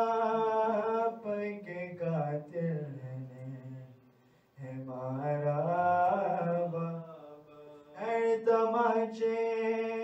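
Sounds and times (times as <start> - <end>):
man chanting into a microphone: 0.0 - 4.0, 4.6 - 10.0.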